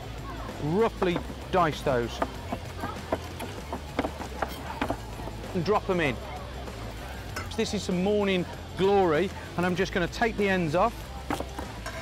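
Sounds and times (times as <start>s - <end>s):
knife chopping on wooden board: 2.2s - 5.0s, 11.3s - 11.6s.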